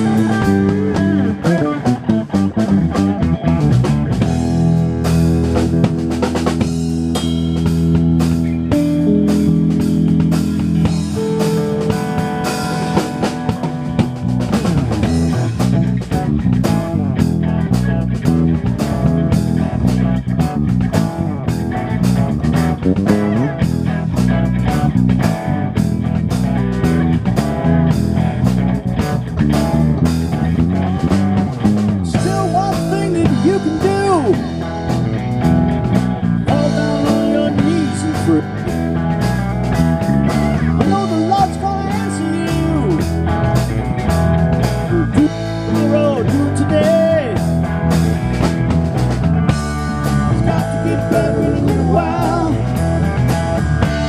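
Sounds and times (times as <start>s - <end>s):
blues-rock band playing: 0.0s - 54.0s
lead electric guitar bending notes: 0.0s - 54.0s.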